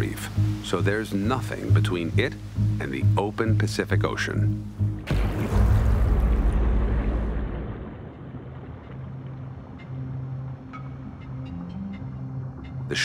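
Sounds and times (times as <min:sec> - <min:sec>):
underwater ambience: 0:04.6 - 0:12.9
rush of water and bubbles: 0:05.0 - 0:09.4.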